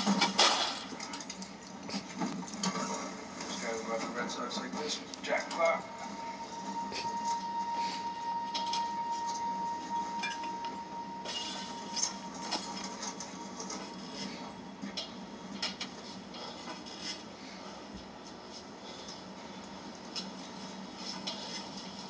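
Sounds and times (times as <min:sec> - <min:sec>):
constant low hum: 0:00.0 - 0:22.0
steady high tone: 0:05.4 - 0:14.6.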